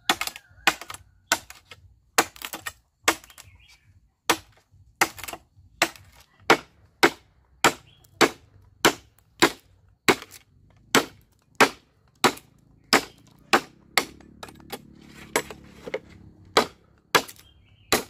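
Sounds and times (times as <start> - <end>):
machete chopping bamboo: 0.0 - 18.0.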